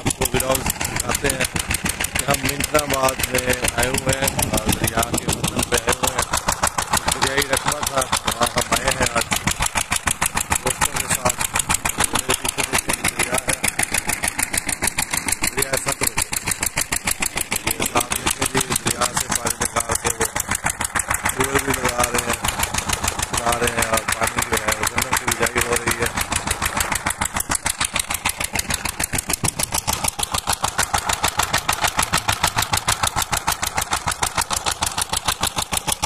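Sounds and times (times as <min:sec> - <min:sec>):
man talking: 0:00.0 - 0:01.6, 0:02.2 - 0:06.3, 0:07.1 - 0:09.4, 0:10.5 - 0:13.7, 0:15.4 - 0:16.3, 0:17.6 - 0:20.3, 0:21.3 - 0:22.4, 0:23.4 - 0:26.2
engine driving water pump: 0:00.0 - 0:36.0.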